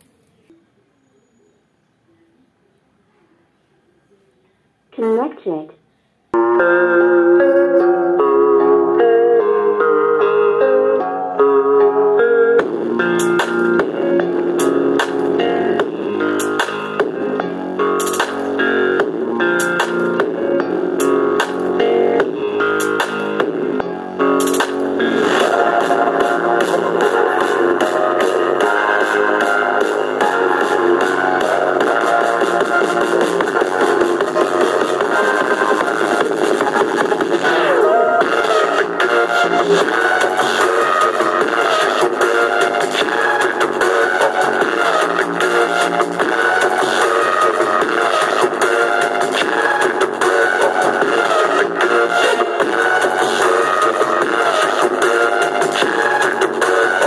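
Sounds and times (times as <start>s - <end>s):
guitar and electronic beat music: 6.3s - 57.0s.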